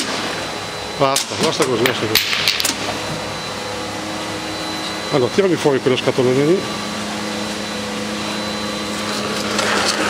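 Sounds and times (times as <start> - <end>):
conveyor machinery hum: 0.0 - 10.0.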